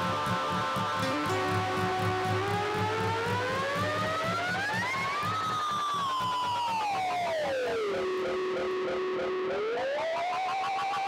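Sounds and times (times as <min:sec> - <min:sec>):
effects-processed guitar tone sliding: 0:00.0 - 0:11.0
pulsing repeated guitar notes: 0:00.0 - 0:11.0.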